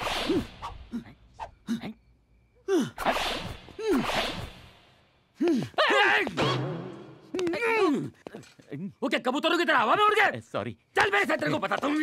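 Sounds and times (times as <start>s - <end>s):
men gasping cries: 5.3s - 6.0s.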